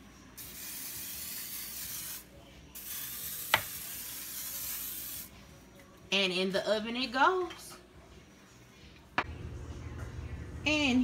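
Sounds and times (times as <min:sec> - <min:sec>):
aerosol spray hissing: 0:00.4 - 0:05.3.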